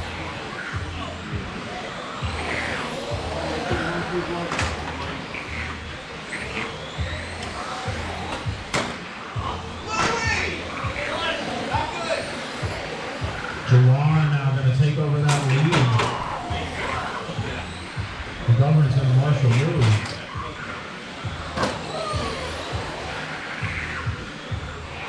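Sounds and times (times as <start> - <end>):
background music: 0.0 - 25.0
rc car motors whining: 0.0 - 25.0
voices in echoing hall: 0.0 - 25.0.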